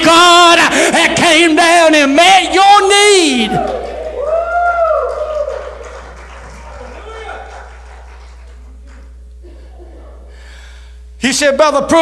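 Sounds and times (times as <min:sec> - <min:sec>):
hall echo: 0:00.0 - 0:12.0
steady low hum: 0:00.0 - 0:12.0.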